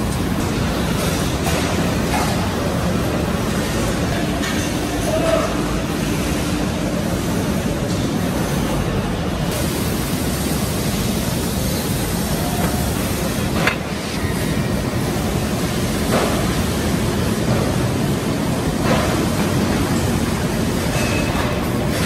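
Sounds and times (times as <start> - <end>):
factory floor noise: 0.0 - 22.0.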